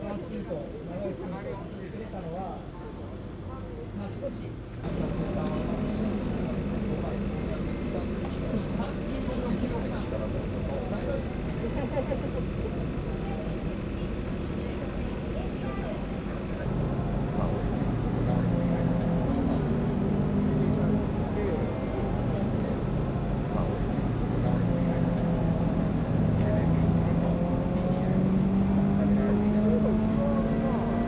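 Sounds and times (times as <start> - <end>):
low mechanical drone: 0.0 - 31.0
voices: 0.0 - 31.0.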